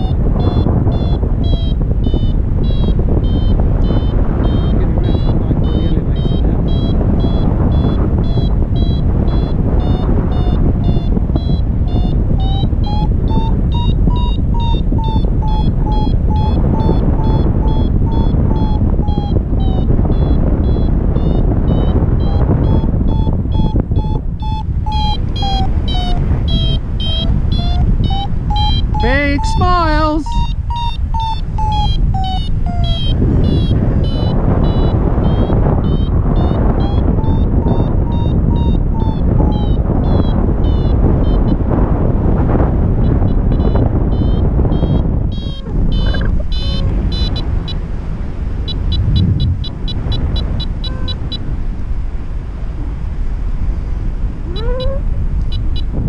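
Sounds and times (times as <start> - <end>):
variometer beeping: 0.0 - 42.4, 43.0 - 51.6, 54.5 - 56.0
wind on microphone: 0.0 - 56.0.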